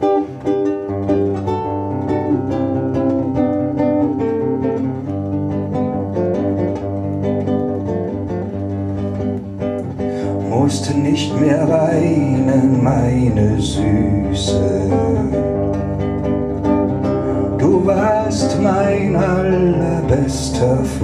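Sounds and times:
guitar playing picked melody: 0.0 - 21.0.

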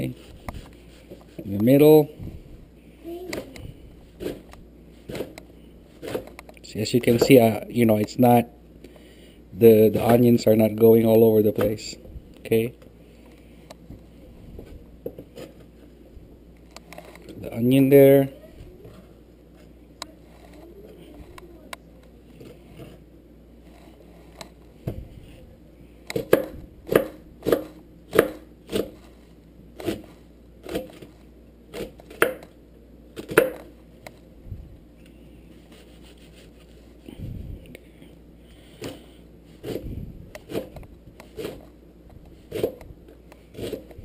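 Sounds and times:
knife chopping on cutting board: 26.2 - 29.0, 31.7 - 32.4.

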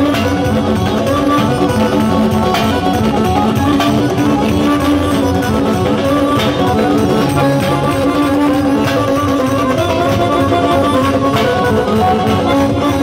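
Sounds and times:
drums beaten with sticks: 0.0 - 13.0
electronic keyboard melody: 0.0 - 13.0.

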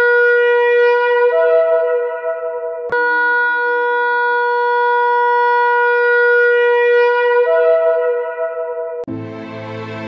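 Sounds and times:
shofar long steady note: 0.0 - 10.0.

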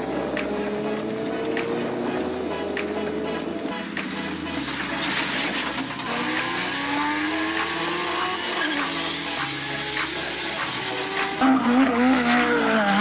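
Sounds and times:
background music with bass line: 0.0 - 13.0
vehicle engine revving: 0.0 - 13.0.

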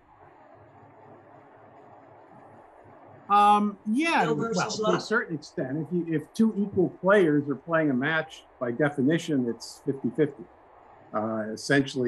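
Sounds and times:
weak low hum: 0.0 - 12.0.

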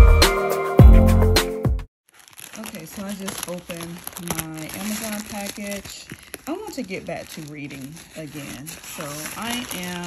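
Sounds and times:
plastic mailer bag crinkling: 2.0 - 10.0.

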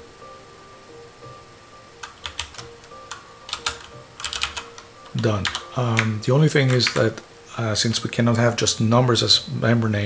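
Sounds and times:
faint steady tone: 0.0 - 4.2
typing on computer keyboard: 2.0 - 7.1.

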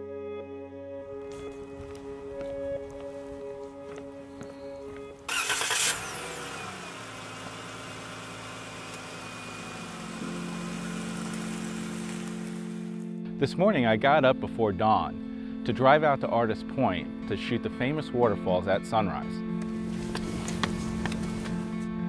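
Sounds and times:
soft background music: 0.0 - 5.8, 9.5 - 22.0
car engine starting and running: 4.6 - 13.0, 19.6 - 21.8.

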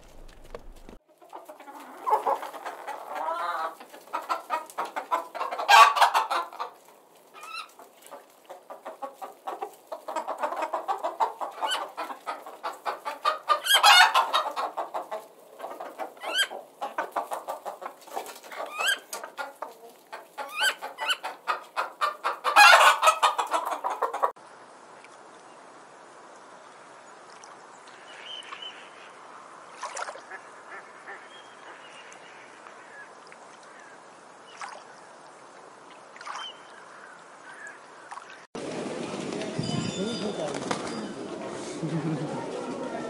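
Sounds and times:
chickens clucking: 0.0 - 24.4.

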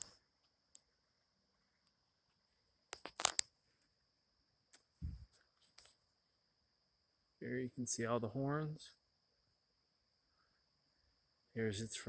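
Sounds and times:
sharp crackling clicks: 0.0 - 0.9, 2.9 - 3.5.

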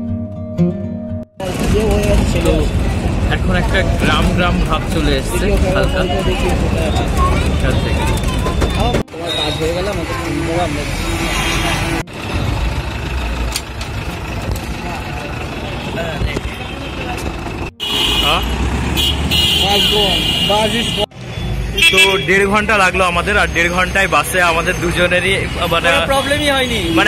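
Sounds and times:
people's voices: 1.4 - 12.1, 14.0 - 18.6
engine and road rumble: 1.4 - 27.0
vehicle horns: 5.7 - 12.1, 15.6 - 22.6, 25.6 - 27.0.

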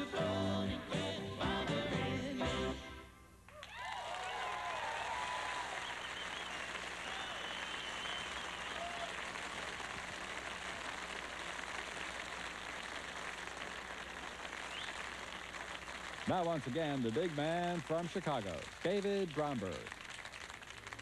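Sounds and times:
audience applauding: 3.5 - 21.0
whistle: 5.8 - 8.9.

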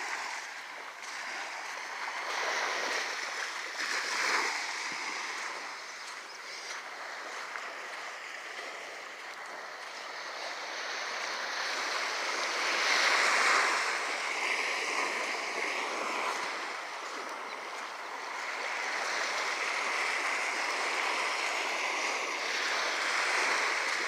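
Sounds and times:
small waves lapping on beach: 0.0 - 24.0.

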